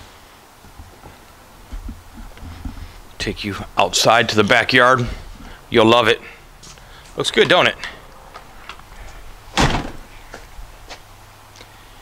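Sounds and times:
door shutting with a bang: 0:09.5 - 0:10.1.

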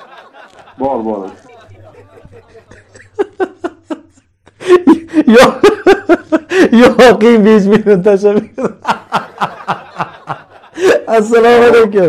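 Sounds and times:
man laughing breathlessly: 0:02.4 - 0:06.8, 0:10.5 - 0:11.1.

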